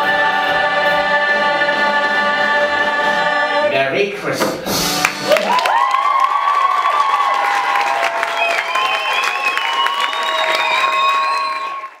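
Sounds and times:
audience clapping: 5.0 - 12.0
shrieks and whoops: 5.3 - 12.0.

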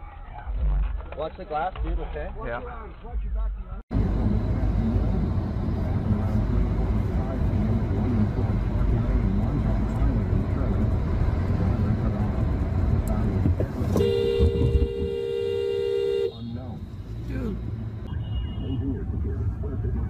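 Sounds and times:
car driving rumble: 3.9 - 20.0
two-tone car horn: 14.0 - 16.6.

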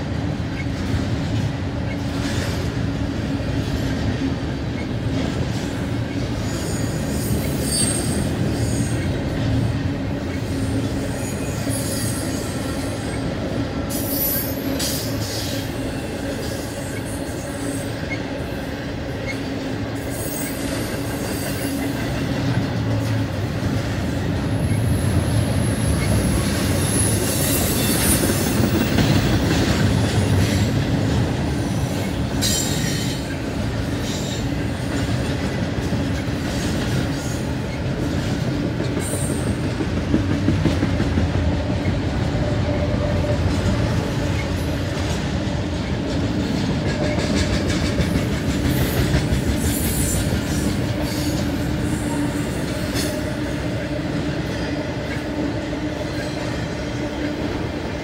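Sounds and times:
train wheels rumbling on rails: 0.0 - 58.0
wheel squeals: 6.4 - 9.1.

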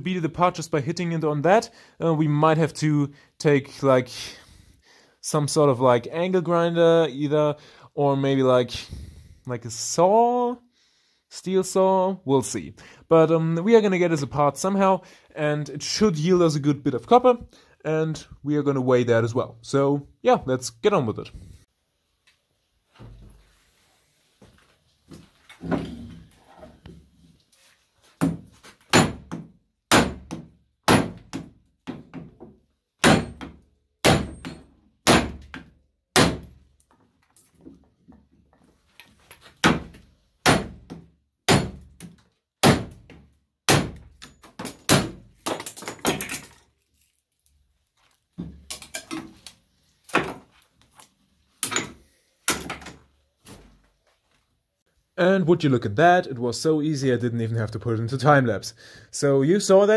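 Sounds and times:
hammer striking steel core: 33.0 - 35.4.

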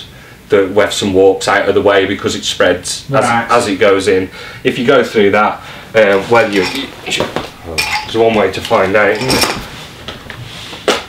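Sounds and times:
metal tools clinking and knocking: 6.4 - 9.7.

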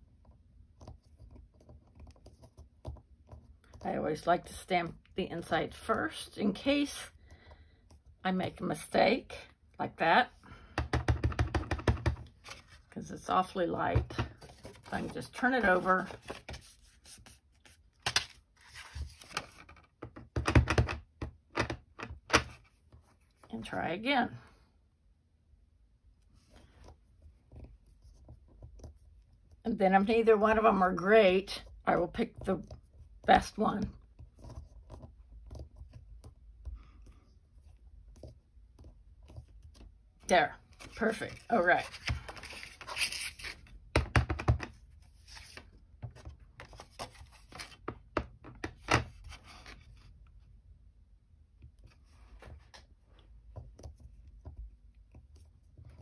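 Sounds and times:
paper brushing: 14.4 - 19.4, 40.8 - 43.6.

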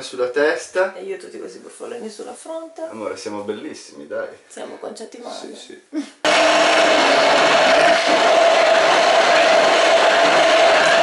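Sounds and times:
immersion blender whirring: 6.2 - 11.0.

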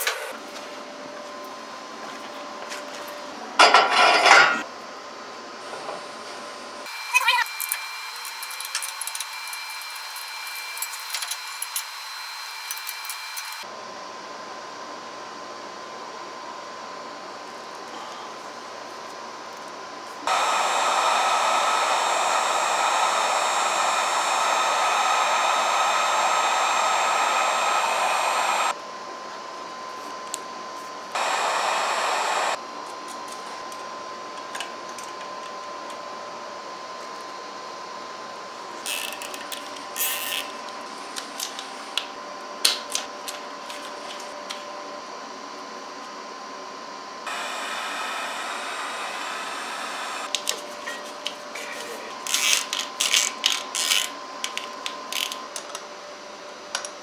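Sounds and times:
heat gun blowing: 20.2 - 28.8, 31.1 - 32.6, 47.3 - 50.4.

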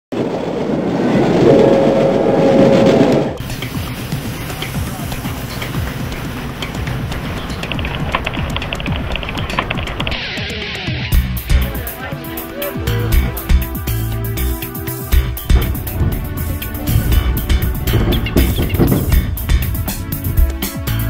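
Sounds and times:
train rumbling and clattering: 0.2 - 10.2, 11.5 - 21.0
music with held tone: 3.4 - 21.0.

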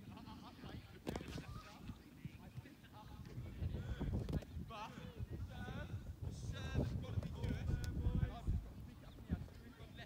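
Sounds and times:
wind rumble on microphone: 0.6 - 10.0.

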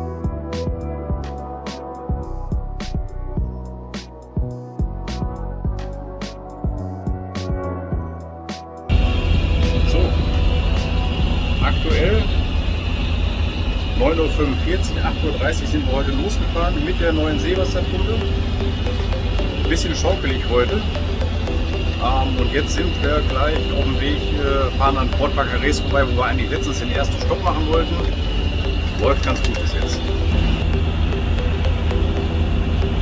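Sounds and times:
music: 0.0 - 33.0
boat engines droning: 8.9 - 33.0
man talking: 11.6 - 12.3, 14.0 - 18.2, 19.7 - 20.9, 22.0 - 28.1, 29.0 - 30.0.

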